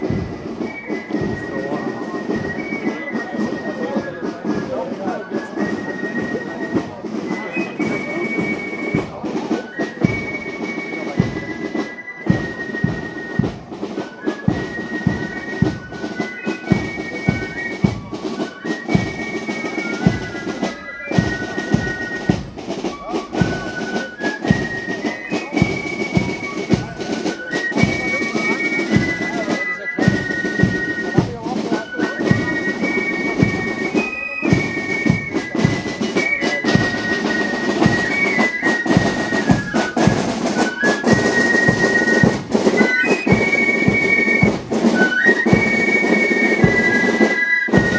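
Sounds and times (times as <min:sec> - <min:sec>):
flute melody: 0:00.0 - 0:47.9
marching drum beat: 0:00.0 - 0:47.9.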